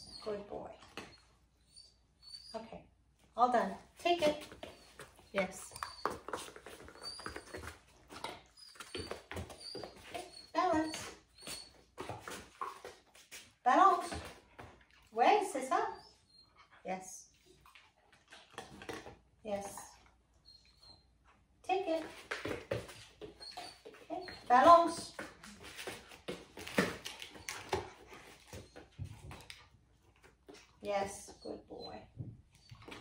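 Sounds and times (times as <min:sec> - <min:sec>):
paws tapping on foam pads: 0:04.4 - 0:13.5
high squeaks: 0:04.6 - 0:12.4.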